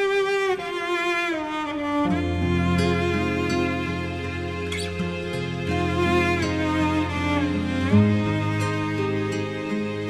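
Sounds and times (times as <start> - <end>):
bowed strings sliding down: 0.0 - 10.0.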